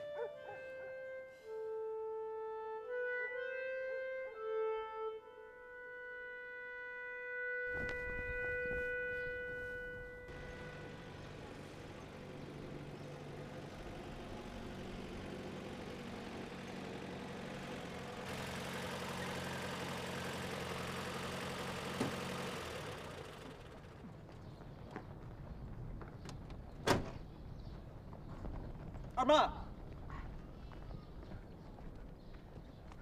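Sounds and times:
held woodwind note: 0.0s - 11.8s
jeep engine running: 9.2s - 26.7s.

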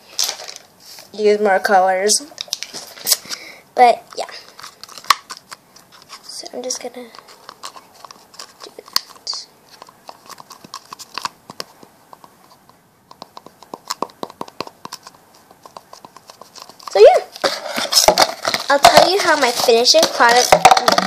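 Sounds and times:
hands clicking and tapping bottle: 7.1s - 21.0s.

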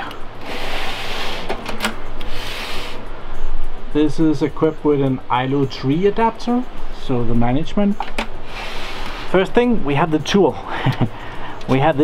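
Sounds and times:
hand rubbing on metal panel: 2.2s - 3.0s, 8.5s - 9.4s.

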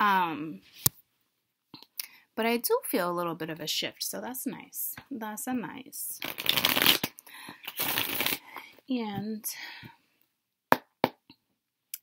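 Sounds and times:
cards being shuffled by hand: 6.2s - 8.4s.

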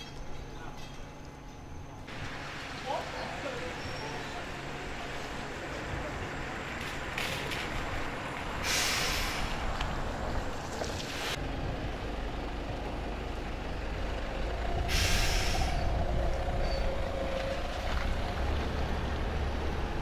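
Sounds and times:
bus diesel engine rumble: 0.0s - 20.0s
air brake hiss: 8.6s - 9.6s, 14.9s - 15.9s.

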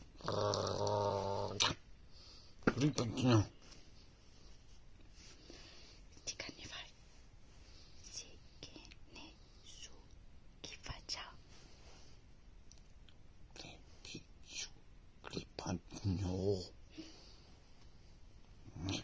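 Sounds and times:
person whispering: 6.2s - 7.0s, 8.0s - 11.4s, 13.5s - 17.1s, 18.7s - 19.0s.

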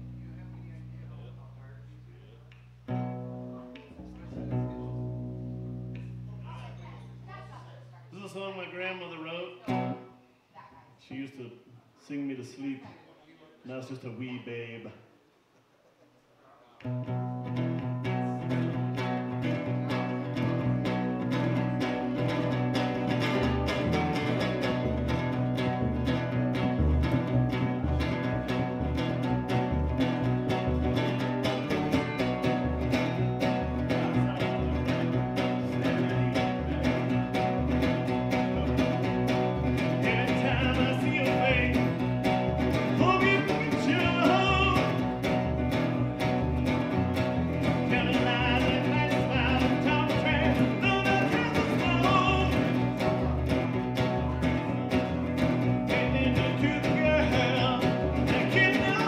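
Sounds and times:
plucked upright bass: 0.0s - 7.5s, 16.9s - 59.0s
acoustic guitar strumming: 2.8s - 8.0s, 9.6s - 10.1s, 16.9s - 59.0s
man singing: 33.4s - 37.2s, 38.4s - 42.0s, 42.7s - 45.2s, 47.6s - 53.2s, 55.8s - 59.0s.

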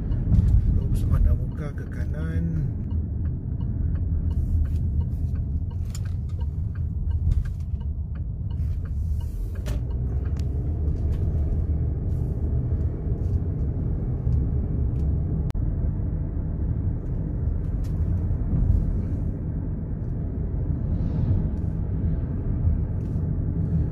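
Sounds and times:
car road and engine rumble: 0.0s - 23.9s.

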